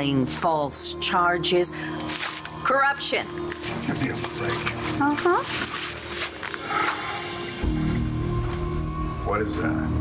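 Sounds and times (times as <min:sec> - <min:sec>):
low sustained music chord: 0:00.0 - 0:10.0
plastic bag crinkling: 0:02.0 - 0:02.7, 0:03.3 - 0:07.2.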